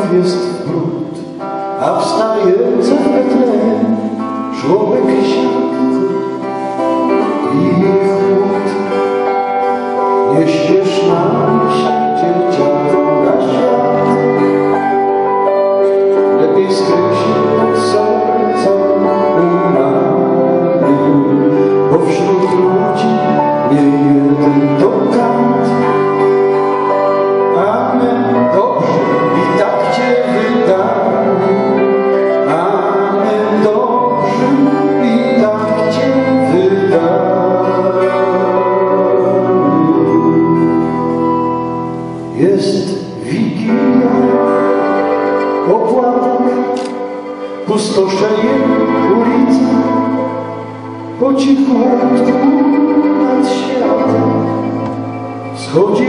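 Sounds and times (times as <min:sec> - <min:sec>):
bowed violin melody: 0:00.0 - 0:56.0
keyboard: 0:00.0 - 0:56.0
strummed acoustic guitar: 0:00.0 - 0:56.0.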